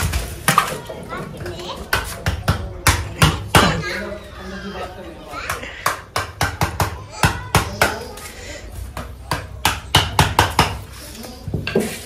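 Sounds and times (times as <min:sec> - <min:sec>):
child's voice: 0:06.8 - 0:08.4.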